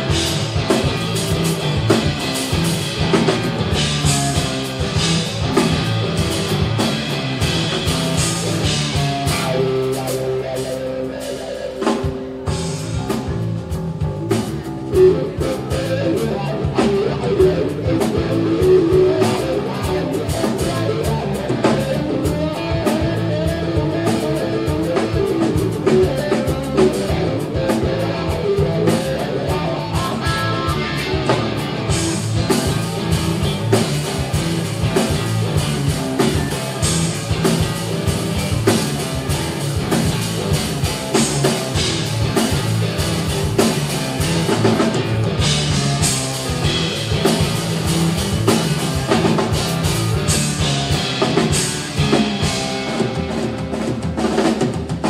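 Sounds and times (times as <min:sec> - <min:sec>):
drum kit: 0:00.0 - 0:55.0
electric bass: 0:00.0 - 0:55.0
electric guitar: 0:00.0 - 0:55.0.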